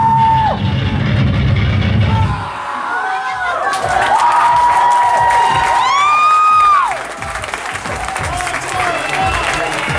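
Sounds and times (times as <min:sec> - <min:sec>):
crowd cheering: 0:00.0 - 0:01.1, 0:02.0 - 0:09.9.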